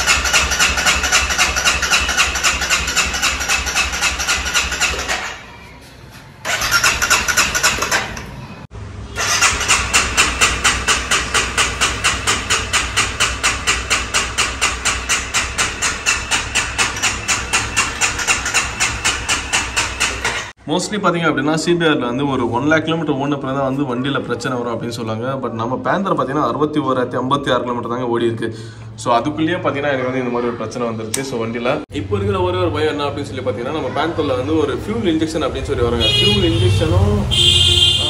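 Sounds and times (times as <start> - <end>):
motorcycle starter cranking: 0.0 - 5.5, 6.4 - 8.4, 9.1 - 20.6.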